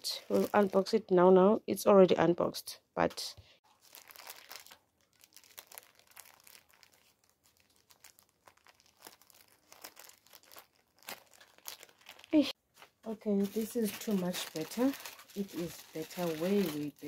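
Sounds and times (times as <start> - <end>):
plastic bag crinkling: 0.0 - 1.0, 3.7 - 12.6, 13.2 - 17.0
woman's voice: 0.0 - 3.4, 13.1 - 17.0.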